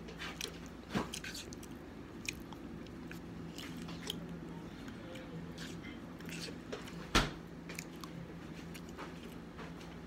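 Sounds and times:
chewing and lip-smacking: 0.0 - 10.0.

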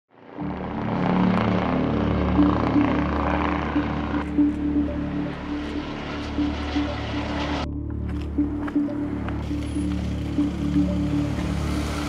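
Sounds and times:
helicopter rotor drone: 0.2 - 7.7, 8.8 - 12.0
held low music notes: 0.3 - 12.0.

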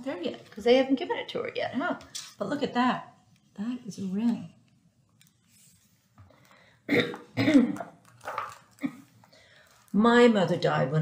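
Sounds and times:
woman coughing: 6.9 - 8.0.

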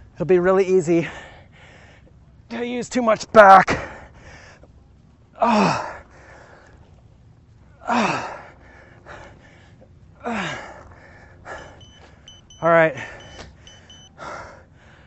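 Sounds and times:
short electronic beeps: 11.6 - 14.1.

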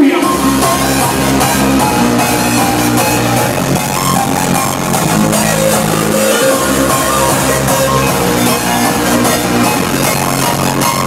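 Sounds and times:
loud electronic music: 0.0 - 11.0.

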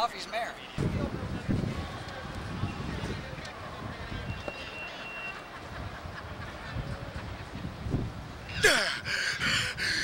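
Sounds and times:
low street rumble: 0.5 - 10.0.

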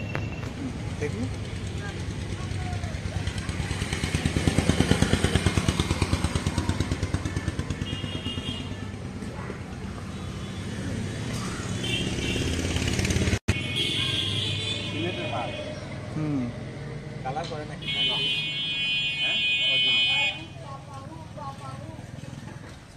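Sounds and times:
motorcycle engine idling: 0.7 - 10.4.

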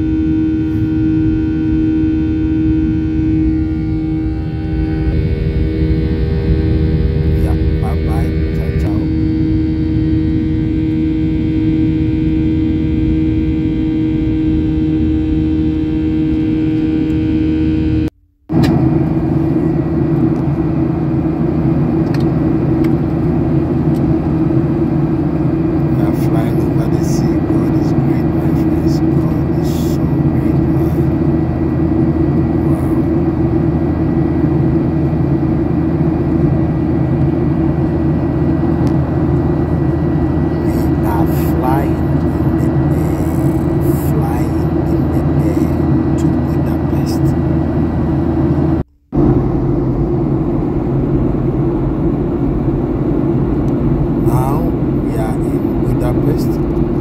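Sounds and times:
jet engines and airflow rush: 0.0 - 57.0
low cabin hum: 0.0 - 57.0.

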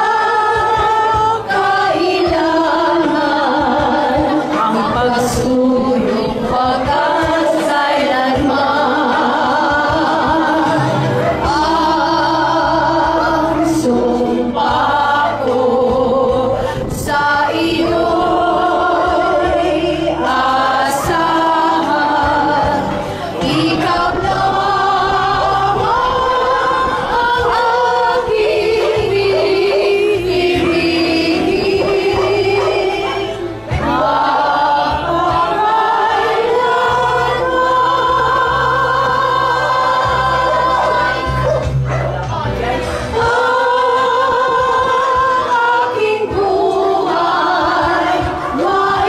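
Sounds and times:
women singing slow song: 0.0 - 49.0.

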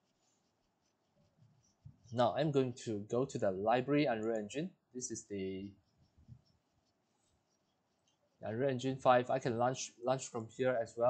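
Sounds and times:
faint low sounds: 2.0 - 5.7, 8.4 - 11.0.

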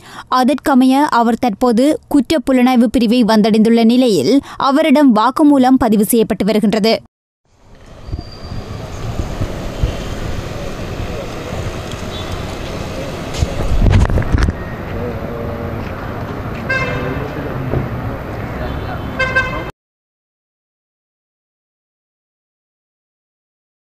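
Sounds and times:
passing traffic: 7.5 - 19.7
crowd talking: 8.6 - 13.9
vehicle horn tooting: 16.7 - 17.3, 18.8 - 19.7.

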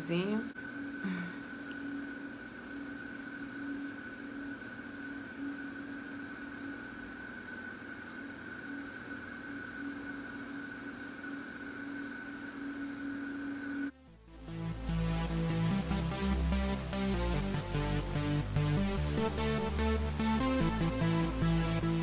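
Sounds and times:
room noise: 0.0 - 14.0
electrical hum: 0.0 - 22.0
high whine: 0.0 - 22.0.

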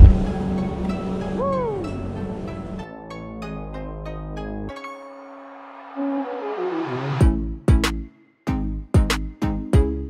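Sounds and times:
lift machinery hum: 0.0 - 2.8.

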